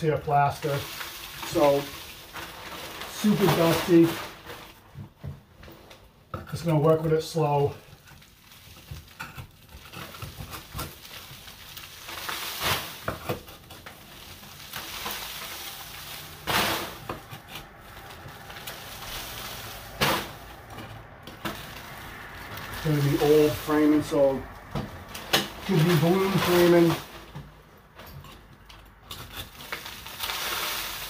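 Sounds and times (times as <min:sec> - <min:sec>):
crumbling plaster: 0:00.0 - 0:31.0.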